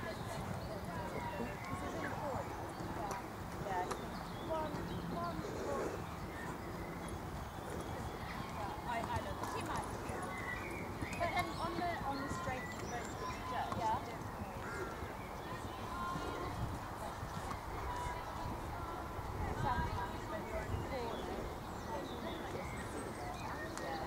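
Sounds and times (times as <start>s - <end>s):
faint voices: 0.0s - 24.0s
horse trotting on sand: 0.0s - 24.0s.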